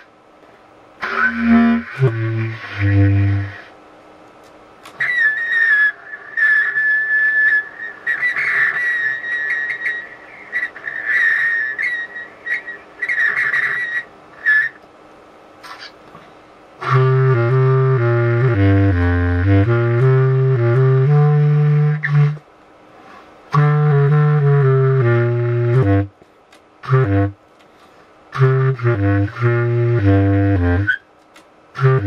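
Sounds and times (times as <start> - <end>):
low reed woodwind notes: 1.0 - 3.7, 16.8 - 22.4, 23.5 - 26.1, 26.8 - 27.4, 28.3 - 31.0, 31.8 - 32.0
high whistled tune: 5.0 - 14.8.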